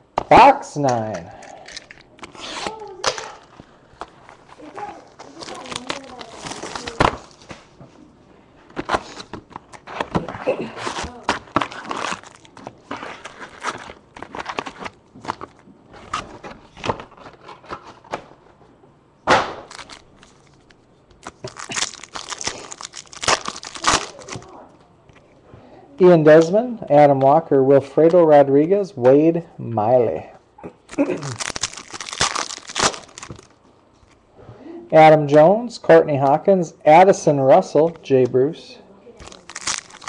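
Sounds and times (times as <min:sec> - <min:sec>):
foil packs crinkling and tearing: 0:01.7 - 0:07.5, 0:08.8 - 0:18.0, 0:19.7 - 0:24.6, 0:30.9 - 0:33.6, 0:39.2 - 0:40.0.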